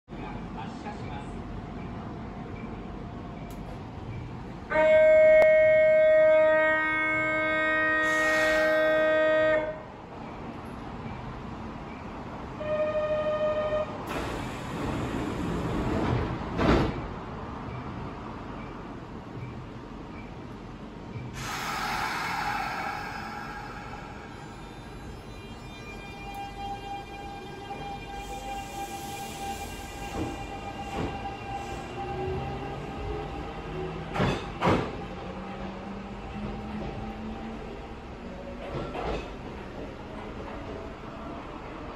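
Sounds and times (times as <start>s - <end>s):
train horn blast: 4.7s - 9.9s, 12.6s - 14.1s
hiss: 8.1s - 9.0s, 21.4s - 24.4s.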